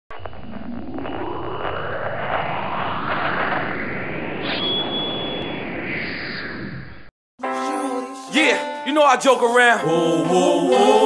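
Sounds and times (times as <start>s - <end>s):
low rumble: 0.1s - 7.1s
rising whooshing sweep: 0.1s - 7.1s
swoosh: 0.1s - 7.1s.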